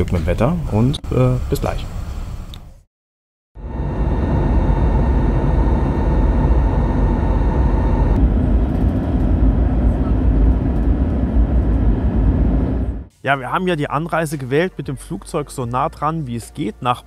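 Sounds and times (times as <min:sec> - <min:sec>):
airliner engines and airflow rumble: 0:03.6 - 0:13.1.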